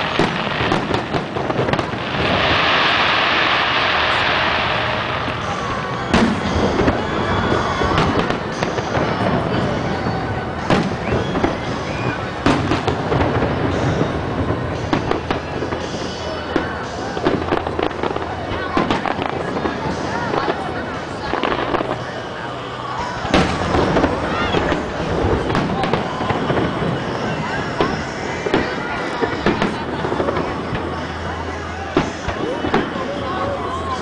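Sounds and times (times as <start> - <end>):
fireworks bangs and crackles: 0.0 - 34.0
people talking: 0.0 - 34.0.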